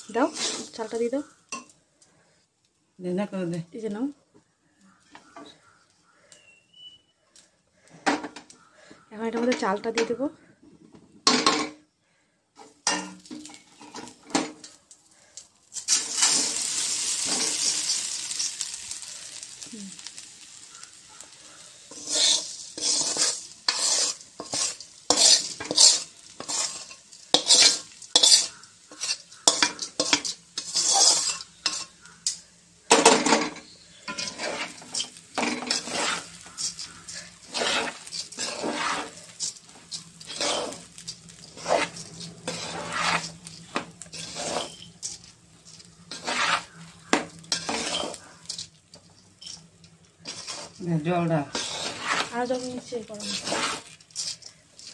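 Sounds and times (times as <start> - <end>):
ghee sizzling in pot: 0.0 - 4.2, 12.6 - 54.9
metal spoon scraping steel pot: 0.1 - 0.9, 21.9 - 32.4, 33.0 - 54.9.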